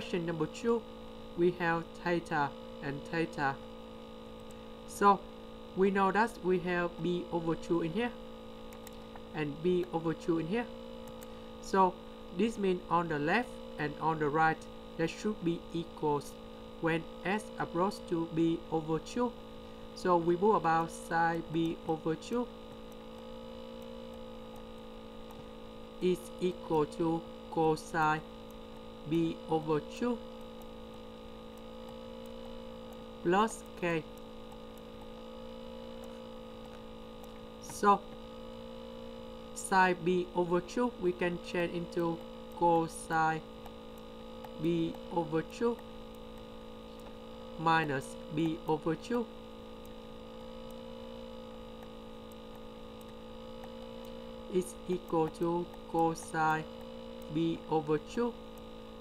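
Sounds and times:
electrical hum: 0.0s - 59.0s
faint ticks: 4.2s - 4.7s, 8.7s - 10.0s, 10.9s - 11.5s, 20.8s - 25.8s, 28.3s - 39.6s, 40.4s - 59.0s.

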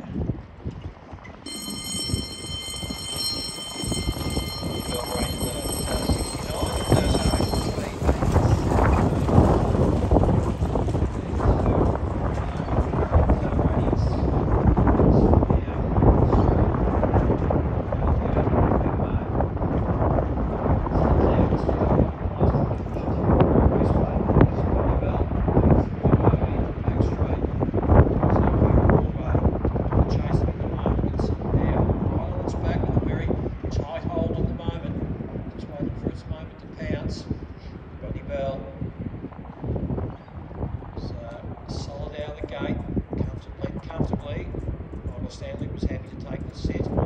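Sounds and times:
wind buffeting microphone: 0.0s - 47.0s
bell ringing: 1.5s - 9.8s.

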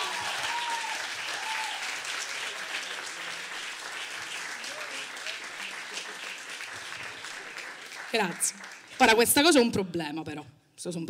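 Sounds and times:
audience applauding: 0.0s - 9.5s.

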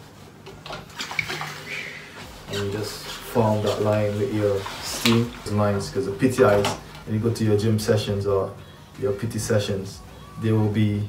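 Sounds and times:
steam iron hissing and spluttering: 1.6s - 5.5s.

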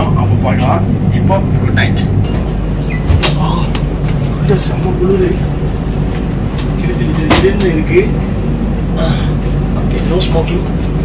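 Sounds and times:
train coach rumbling: 0.0s - 11.0s
high squeaks: 2.3s - 3.2s.

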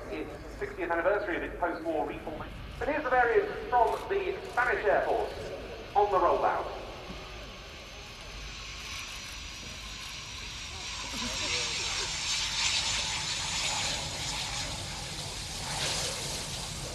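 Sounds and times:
jet engines hissing with whine: 0.0s - 16.9s.

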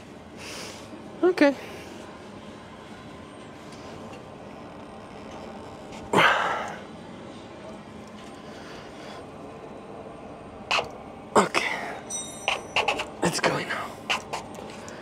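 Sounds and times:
low background noise: 0.0s - 15.0s.

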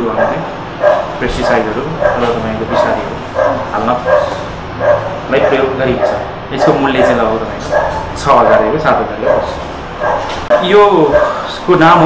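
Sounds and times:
person speaking: 0.0s - 4.6s, 5.2s - 9.7s.

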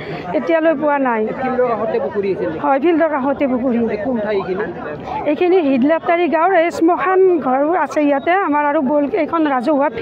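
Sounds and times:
people chattering: 0.0s - 10.0s
woman speaking: 0.3s - 1.4s, 2.6s - 4.2s, 5.2s - 10.0s.

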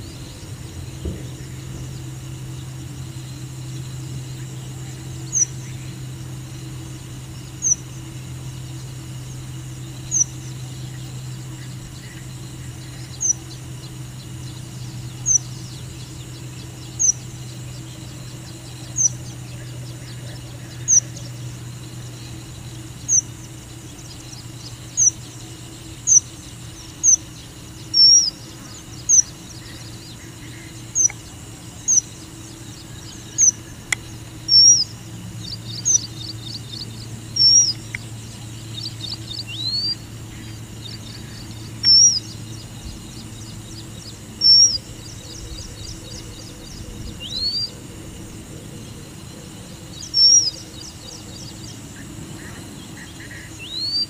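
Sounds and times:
bird twittering: 0.0s - 48.4s, 49.9s - 54.0s
steady low hum: 0.0s - 54.0s
finch chirping: 27.0s - 28.4s, 33.1s - 47.7s, 50.0s - 51.4s.

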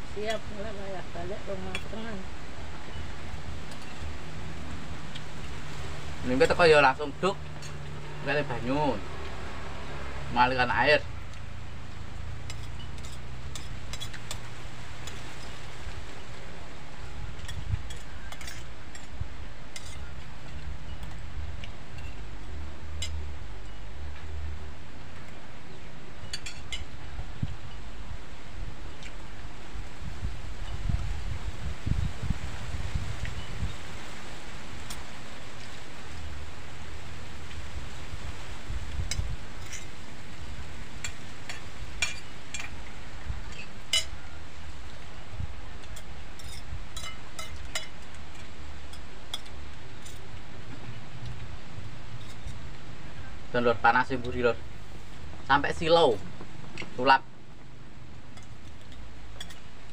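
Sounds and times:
low background noise: 0.0s - 59.9s
spoons clinking on plates: 3.6s - 4.1s, 26.2s - 27.0s, 41.0s - 42.8s, 43.5s - 44.3s, 45.8s - 50.3s, 58.3s - 59.7s.

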